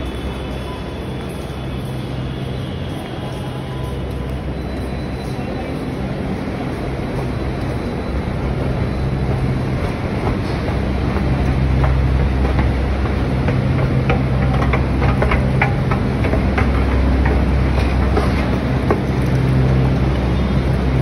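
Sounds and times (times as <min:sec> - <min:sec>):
escalator rumbling: 0:00.0 - 0:21.0
escalator steps clicking: 0:06.6 - 0:21.0.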